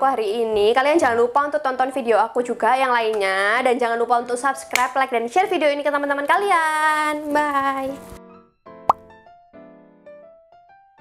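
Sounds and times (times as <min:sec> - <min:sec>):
light keyboard music: 0:07.1 - 0:11.0.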